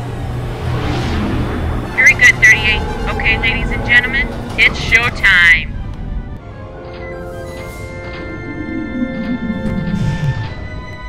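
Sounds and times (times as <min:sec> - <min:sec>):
whoosh: 0:00.0 - 0:02.2
low steady drone: 0:00.0 - 0:11.0
filtered radio voice chatter: 0:02.0 - 0:05.7.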